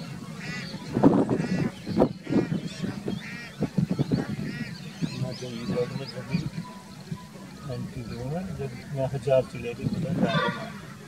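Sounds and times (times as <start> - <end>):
geese honking: 0.0 - 11.0.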